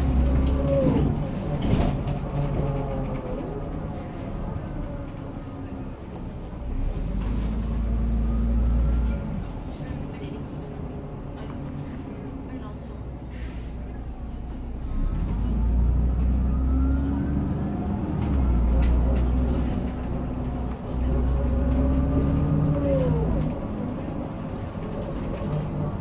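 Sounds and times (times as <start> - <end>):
bus engine accelerating: 0.0 - 26.0.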